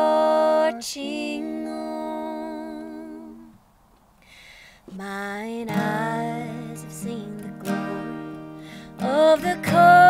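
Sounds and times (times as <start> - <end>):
voices singing in harmony: 0.0 - 3.6.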